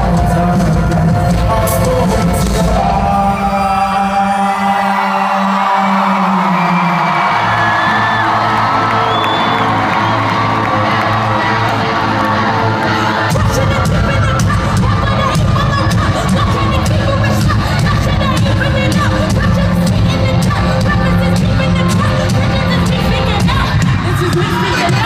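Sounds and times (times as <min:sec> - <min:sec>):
crowd cheering: 0:03.8 - 0:25.0.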